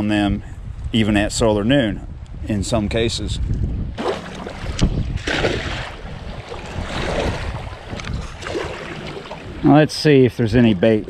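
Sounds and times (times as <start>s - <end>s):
wind rumbling on microphone: 0.0s - 11.0s
net splashing into water: 4.0s - 9.5s
water lapping: 4.0s - 11.0s.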